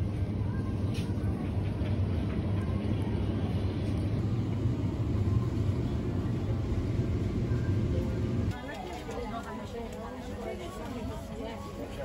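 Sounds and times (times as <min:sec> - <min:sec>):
supermarket background rumble: 0:00.0 - 0:12.0.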